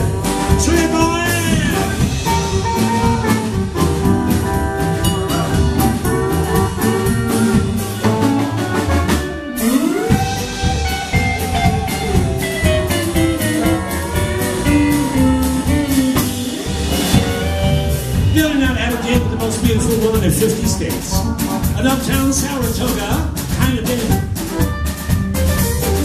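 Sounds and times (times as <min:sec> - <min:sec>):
electric guitar: 0:00.0 - 0:18.4, 0:24.0 - 0:26.0
steel guitar bending notes: 0:00.0 - 0:23.1
drums: 0:00.0 - 0:26.0
keyboard: 0:00.0 - 0:26.0.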